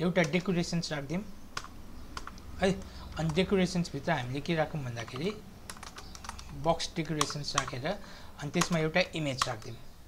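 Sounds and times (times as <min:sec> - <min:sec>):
person talking: 0:00.0 - 0:01.3, 0:02.6 - 0:05.4, 0:06.4 - 0:09.9
computer keyboard typing: 0:00.2 - 0:00.7, 0:01.5 - 0:03.8, 0:04.8 - 0:09.8.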